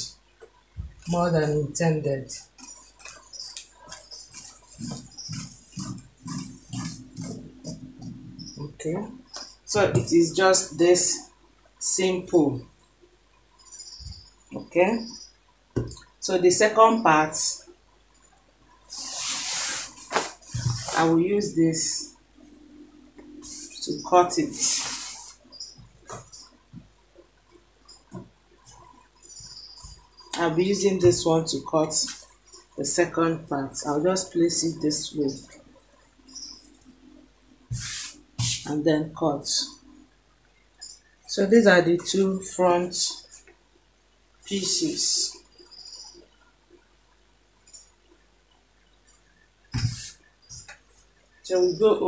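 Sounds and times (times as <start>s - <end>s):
fabric rustling: 18.9s - 21.2s.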